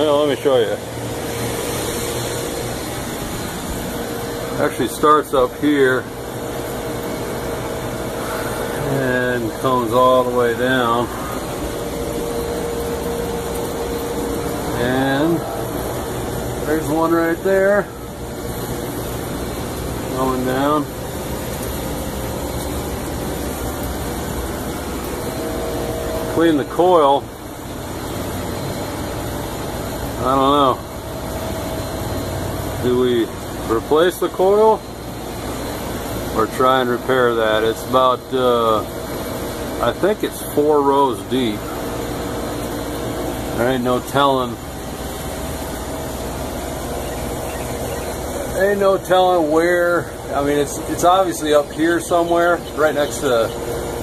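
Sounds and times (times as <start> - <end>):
air conditioning unit humming: 0.0 - 54.0
faint steady whine: 0.0 - 54.0.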